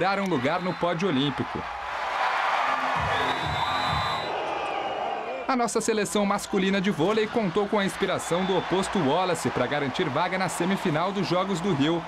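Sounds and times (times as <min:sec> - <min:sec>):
crowd cheering: 0:00.0 - 0:12.0
music: 0:02.6 - 0:04.3.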